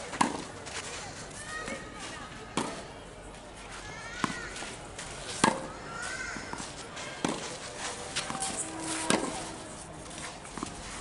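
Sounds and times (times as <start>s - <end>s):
tennis ball hit with racket: 0.1s - 0.5s, 4.2s - 4.6s, 5.3s - 5.8s, 6.4s - 9.5s.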